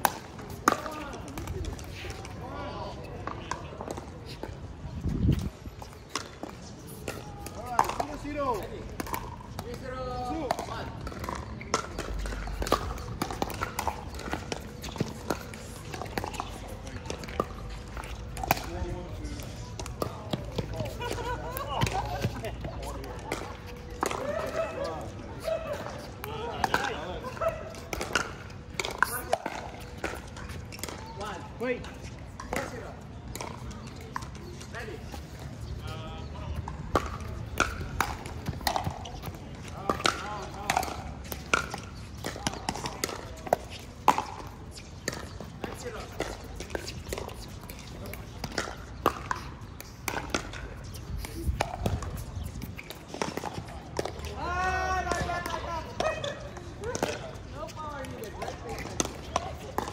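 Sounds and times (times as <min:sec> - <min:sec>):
players' voices: 0:00.0 - 0:59.9
ball bouncing on court: 0:05.3 - 0:25.0, 0:36.6 - 0:59.9.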